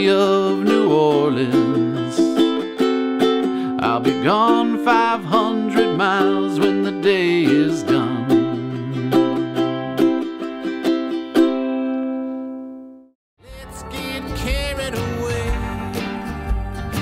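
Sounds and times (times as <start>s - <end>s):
man singing: 0.0s - 2.7s, 3.5s - 9.9s, 13.4s - 17.0s
ukulele strumming: 0.0s - 17.0s.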